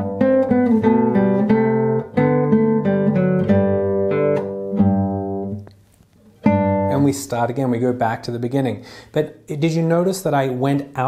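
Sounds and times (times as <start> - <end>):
classical guitar playing: 0.0 - 7.6.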